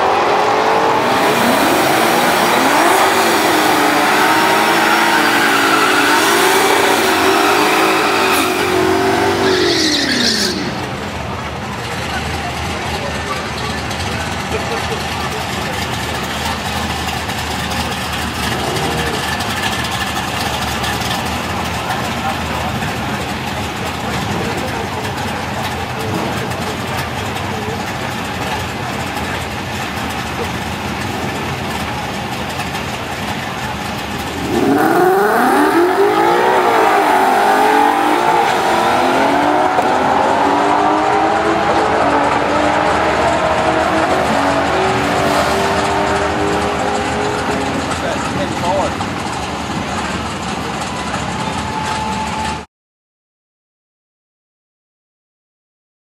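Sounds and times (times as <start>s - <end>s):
car engines revving and accelerating: 0.0s - 52.5s
car engines idling: 0.0s - 52.6s.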